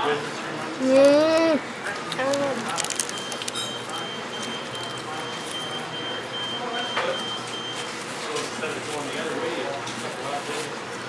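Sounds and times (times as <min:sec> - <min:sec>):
restaurant room noise: 0:00.0 - 0:11.0.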